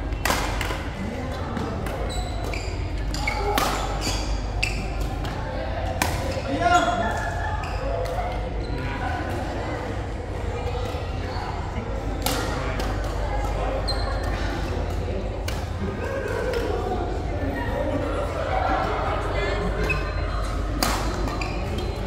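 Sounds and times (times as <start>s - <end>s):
racket hitting shuttlecock: 0.2s - 0.9s, 3.4s - 4.4s, 20.8s - 21.4s
shoes squeaking on court floor: 1.9s - 5.3s, 13.8s - 14.6s, 21.1s - 22.0s.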